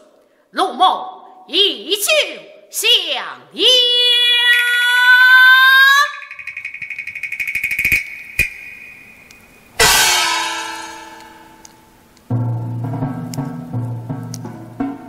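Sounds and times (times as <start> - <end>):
high trilling instrumental line: 5.7 - 11.7
gong crash: 6.2 - 11.9.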